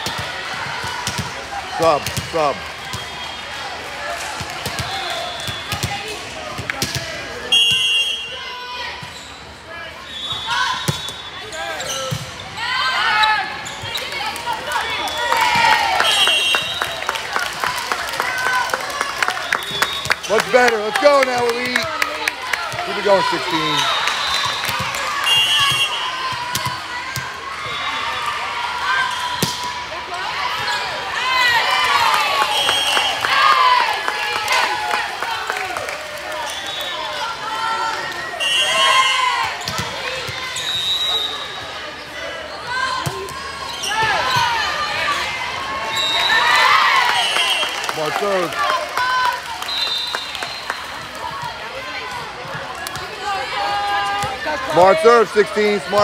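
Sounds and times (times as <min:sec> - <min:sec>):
volleyball hit and bouncing: 0:00.0 - 0:01.4, 0:04.3 - 0:07.8, 0:24.5 - 0:27.3
voices of players and spectators: 0:00.0 - 0:56.0
shoes squeaking on court: 0:10.1 - 0:14.3.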